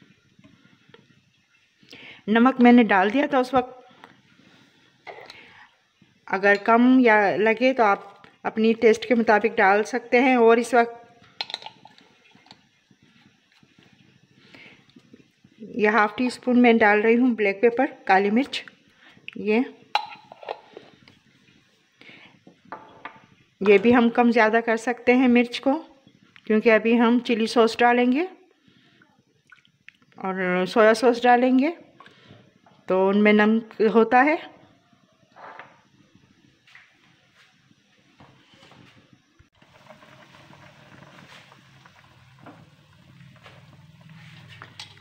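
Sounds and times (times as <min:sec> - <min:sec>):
metal spoon clinking on pot: 0:20.0 - 0:20.6.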